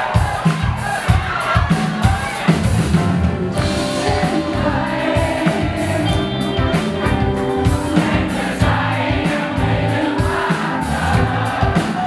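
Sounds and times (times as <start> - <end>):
drum kit: 0.0 - 12.0
electric guitars: 2.7 - 12.0.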